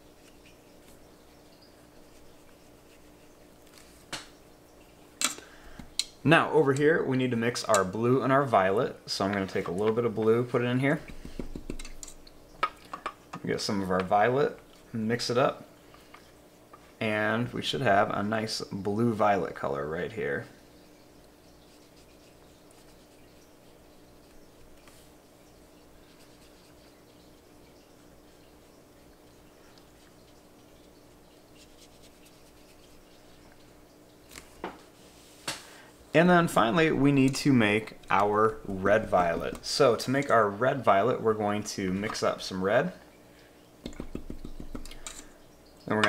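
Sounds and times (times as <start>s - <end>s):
low steady hum: 0.0s - 46.0s
brush on paper: 2.2s - 4.0s, 21.7s - 25.2s, 26.0s - 27.1s, 30.0s - 33.7s, 35.0s - 35.5s
paintbrush tapping on plastic tray: 43.9s - 45.0s.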